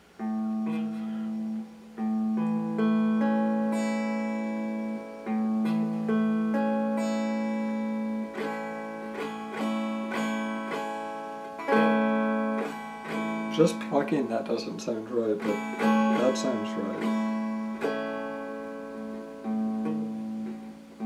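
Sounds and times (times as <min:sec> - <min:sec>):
clean electric guitar chords: 0:00.0 - 0:21.0.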